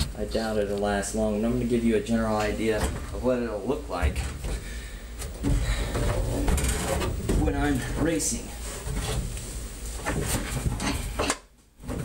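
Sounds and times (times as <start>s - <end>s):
rustling: 4.2s - 12.0s.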